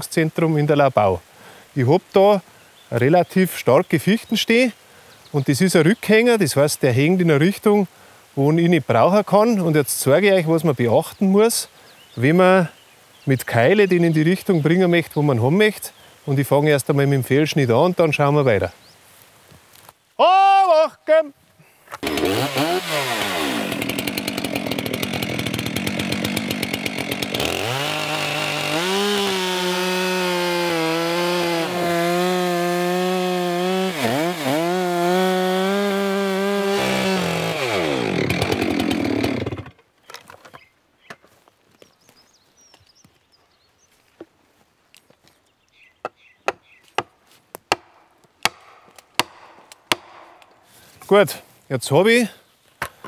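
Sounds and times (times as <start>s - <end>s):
chainsaw cutting through trunk: 22.0s - 39.8s.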